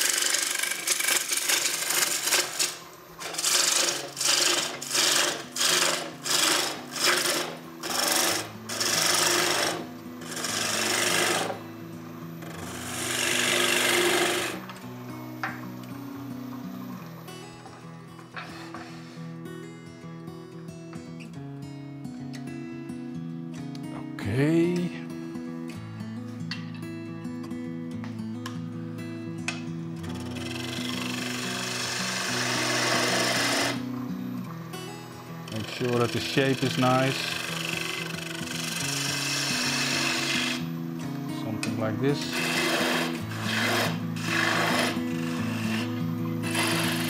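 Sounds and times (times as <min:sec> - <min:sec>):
gouge cutting wood on a lathe: 0:00.0 - 0:11.7, 0:12.4 - 0:14.7, 0:30.1 - 0:34.0, 0:35.4 - 0:40.7, 0:41.5 - 0:47.0
background music: 0:00.1 - 0:47.0.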